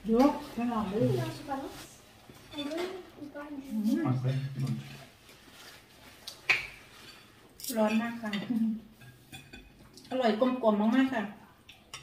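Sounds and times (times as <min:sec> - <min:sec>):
cutlery clinking on plates: 0:06.5 - 0:10.2.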